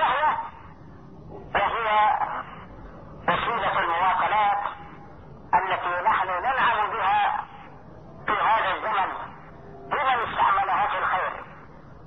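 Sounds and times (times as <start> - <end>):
man speaking over telephone: 0.0 - 0.6, 1.4 - 2.6, 3.2 - 11.7
faint telephone line noise: 0.0 - 12.0.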